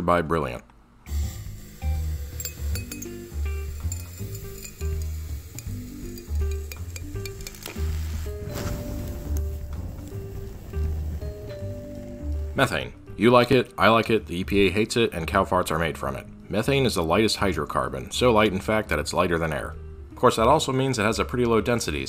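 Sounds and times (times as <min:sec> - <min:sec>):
rush of vapour catching fire: 0:01.1 - 0:12.4
liquid sizzling and boiling off: 0:01.1 - 0:12.6
background music with beat: 0:01.4 - 0:13.2
clinks of glass and flask: 0:02.4 - 0:03.2, 0:03.8 - 0:05.2.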